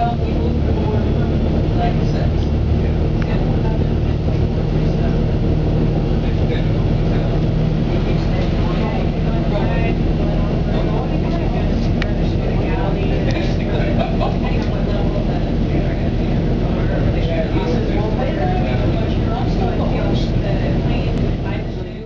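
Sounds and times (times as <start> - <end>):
bus engine low drone: 0.0 - 22.0
faint voices: 0.0 - 22.0
road noise: 0.0 - 22.0.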